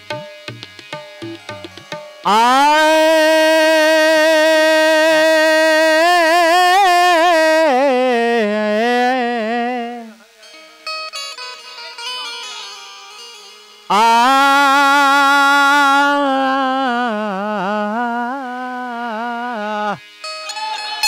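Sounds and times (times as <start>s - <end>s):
man singing long held note: 1.2s - 12.8s, 13.8s - 21.0s.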